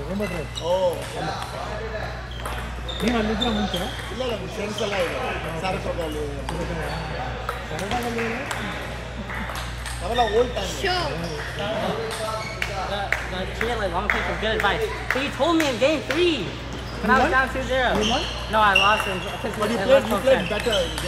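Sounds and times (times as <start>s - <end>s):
voices talking: 0.0s - 21.0s
ping-pong balls clicking: 0.1s - 16.4s, 17.1s - 21.0s.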